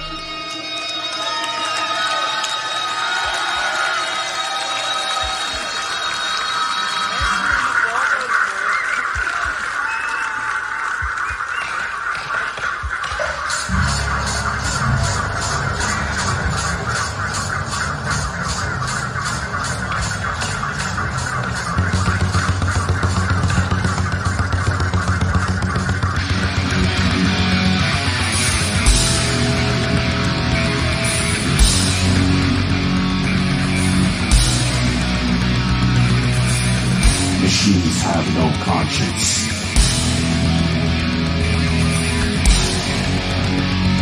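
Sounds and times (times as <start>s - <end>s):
crowd shouting: 0.0s - 20.8s
bass and drums beat: 12.8s - 44.0s
sustained guitar notes: 13.7s - 19.3s, 21.0s - 44.0s.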